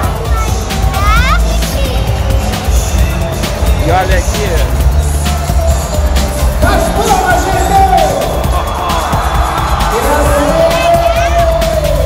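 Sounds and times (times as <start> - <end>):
loud bass-heavy music: 0.0 - 12.0.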